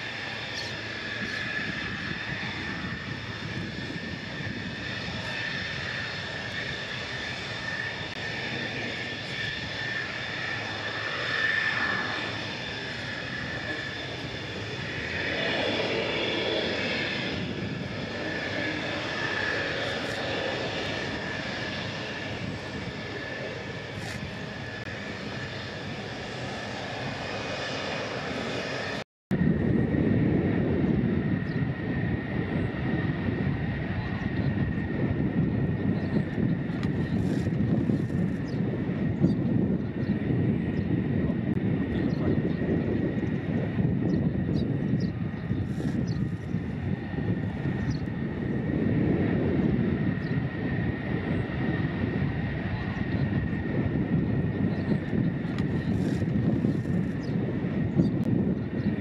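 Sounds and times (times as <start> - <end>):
jet engine rush and whine: 0.0 - 59.0.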